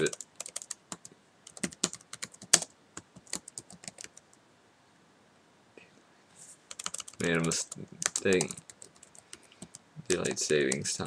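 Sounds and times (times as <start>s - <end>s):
computer keyboard typing: 0.0s - 4.2s, 6.7s - 11.0s.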